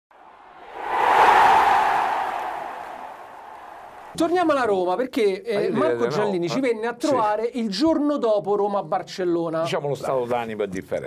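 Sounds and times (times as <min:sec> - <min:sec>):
loud rush of noise: 0:00.1 - 0:04.2.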